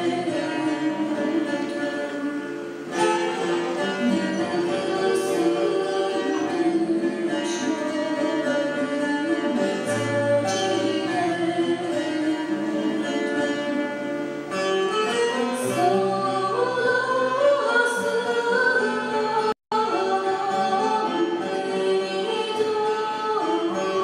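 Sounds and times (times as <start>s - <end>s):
woman singing: 0.0s - 14.0s, 15.1s - 24.0s
guitars plucked: 0.0s - 24.0s
violin bowed: 0.0s - 24.0s.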